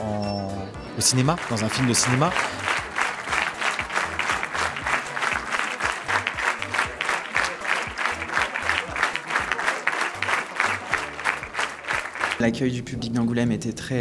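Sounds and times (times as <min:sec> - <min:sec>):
music with low beat: 0:00.5 - 0:13.1
large audience applauding: 0:01.0 - 0:12.5.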